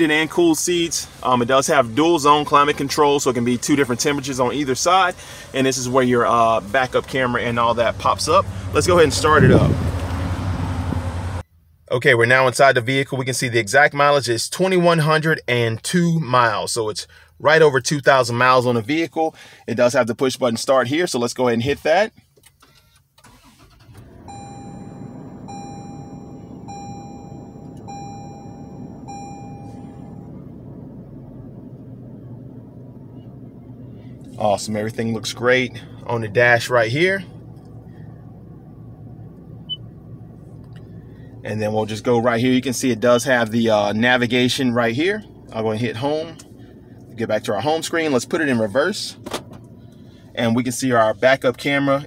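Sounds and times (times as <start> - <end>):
car engine starting and idling: 0.0 - 20.4, 22.2 - 52.0
wind buffeting microphone: 9.1 - 10.1
dashboard chime: 24.3 - 30.3.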